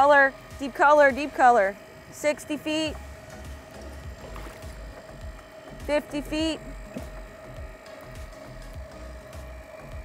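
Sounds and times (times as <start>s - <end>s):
boat engine idling: 0.0s - 10.0s
electric reel whine: 0.0s - 10.0s.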